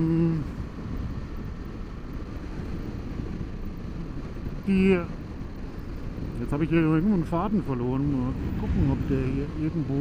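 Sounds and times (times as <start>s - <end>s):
wind rush on microphone: 0.0s - 10.0s.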